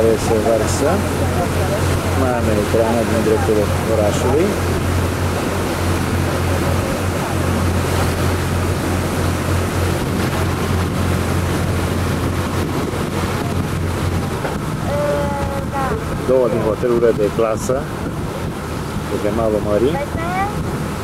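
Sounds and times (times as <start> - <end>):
boat engine humming: 0.0 - 21.0
water rushing: 0.0 - 21.0
wind on microphone: 0.0 - 21.0.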